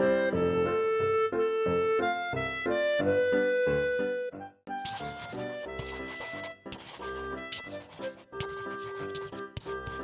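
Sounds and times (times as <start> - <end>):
instrumental background music: 0.0 - 10.0
marker pen drawing on paper: 4.7 - 10.0.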